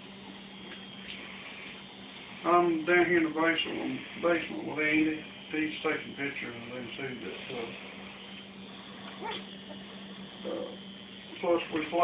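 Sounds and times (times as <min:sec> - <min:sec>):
steady low hum: 0:00.0 - 0:12.0
puppy crying: 0:09.1 - 0:09.9.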